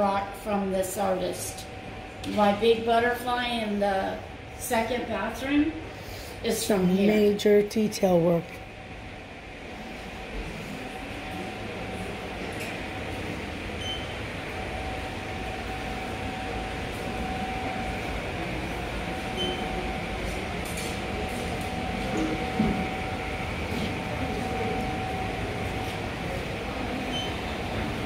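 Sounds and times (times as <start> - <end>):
constant hum: 0.0 - 28.0
floor-cleaning machine whirring: 9.6 - 28.0.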